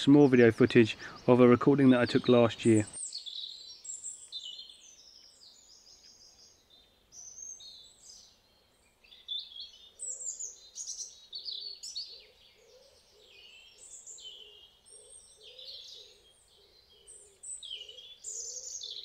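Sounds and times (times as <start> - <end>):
songbirds chirping: 0.0 - 19.0.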